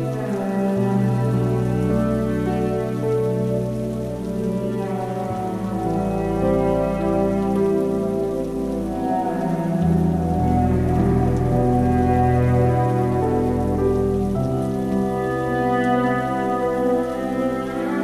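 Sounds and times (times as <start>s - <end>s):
cello and piano music: 0.0s - 18.0s
soft synth pad: 0.0s - 18.0s
steady rain: 0.0s - 18.0s.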